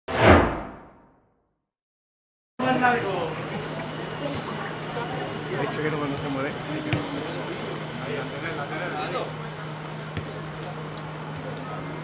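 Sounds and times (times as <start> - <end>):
whoosh sound effect: 0.1 - 1.1.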